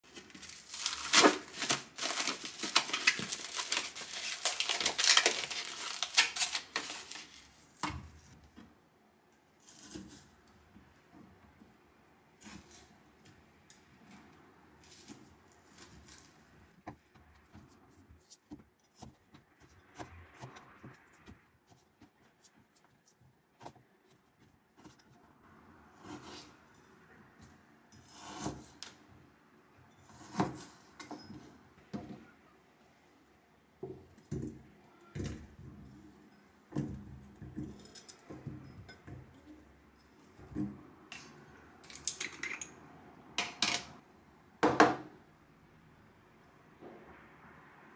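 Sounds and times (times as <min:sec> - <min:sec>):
plastic food wrap crinkling: 0:00.0 - 0:08.4, 0:14.8 - 0:16.8.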